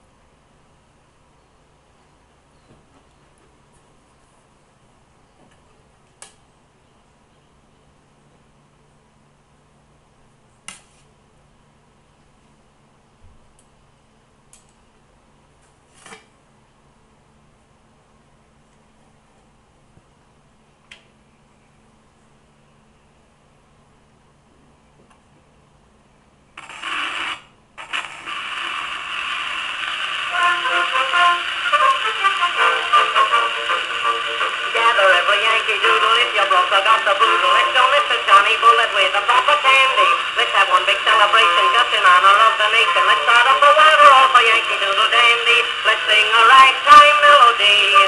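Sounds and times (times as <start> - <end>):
faint room hum: 0.0 - 48.0
record hiss and crackle: 0.0 - 48.0
instrumental music on a phonograph: 26.7 - 48.0.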